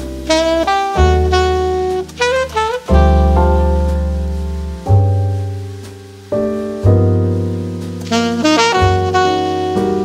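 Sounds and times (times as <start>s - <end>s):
deep bass line: 0.0s - 10.0s
piano chords: 0.0s - 10.0s.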